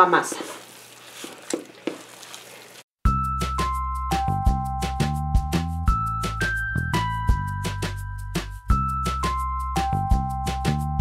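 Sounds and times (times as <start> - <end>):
hand squishing dough: 0.0 - 2.8.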